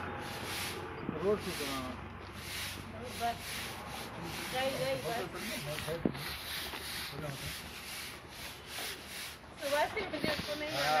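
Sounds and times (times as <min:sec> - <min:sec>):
brooms sweeping pavement: 0:00.0 - 0:11.0.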